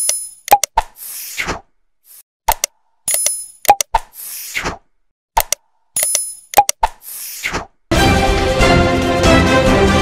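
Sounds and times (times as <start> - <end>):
sharp clicks: 0.0 - 0.9, 2.5 - 4.1, 5.4 - 7.0
music: 7.9 - 10.0.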